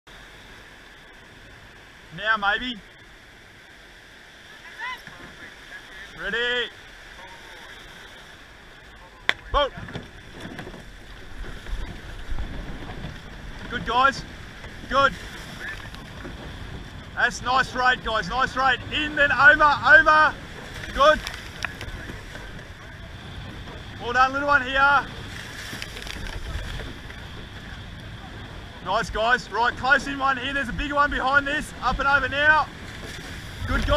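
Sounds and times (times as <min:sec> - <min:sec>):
rushing whitewater: 0:00.1 - 0:33.9
shallow surf washing: 0:00.1 - 0:33.9
distant shout: 0:04.5 - 0:06.8
wind buffeting microphone: 0:09.4 - 0:33.9.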